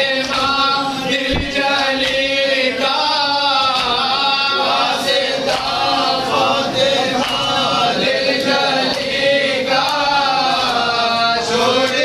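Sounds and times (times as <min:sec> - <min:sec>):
men chanting a lament: 0:00.0 - 0:12.0
brief knocks: 0:01.3 - 0:01.6.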